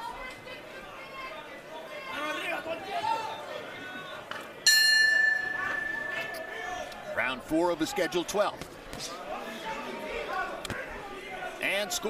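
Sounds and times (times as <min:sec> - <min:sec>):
crowd chatter: 0:00.0 - 0:12.0
boxing ring bell clang: 0:04.7 - 0:07.2.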